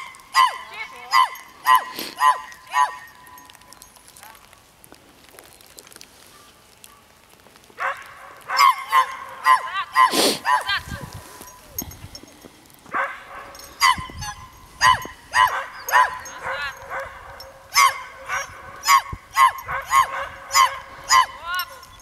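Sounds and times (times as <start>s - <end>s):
dog yipping: 0.0s - 3.4s, 7.8s - 11.1s, 12.9s - 21.9s.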